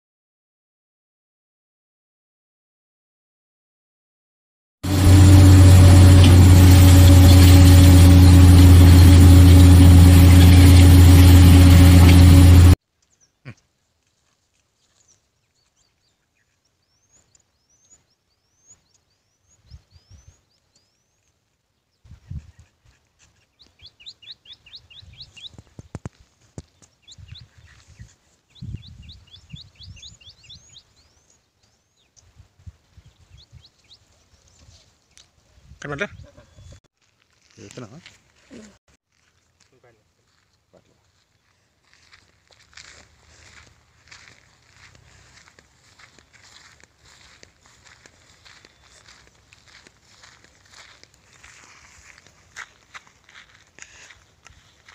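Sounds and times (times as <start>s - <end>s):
low electronic drone with hiss: 4.9s - 12.8s
small birds chirping: 13.0s - 13.8s, 14.6s - 36.8s, 43.2s - 52.2s.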